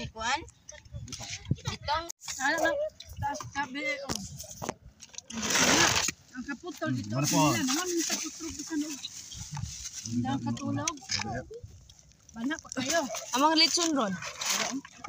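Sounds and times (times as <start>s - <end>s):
people talking: 6.4s - 9.2s, 10.1s - 11.6s.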